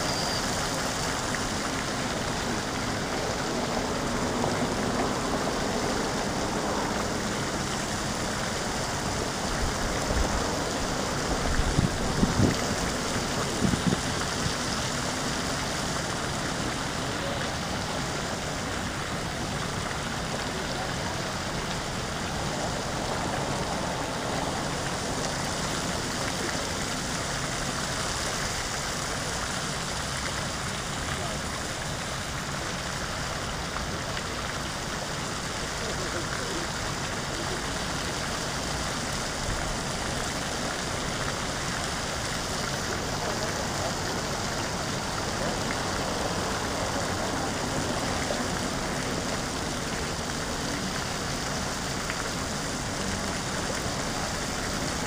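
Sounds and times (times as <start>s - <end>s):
fountain spray splashing: 0.0s - 55.0s.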